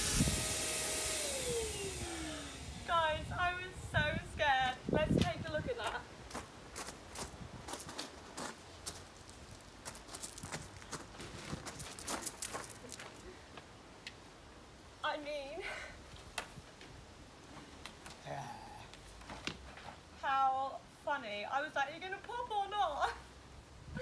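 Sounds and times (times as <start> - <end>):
footsteps on garden steps: 4.3 - 13.8.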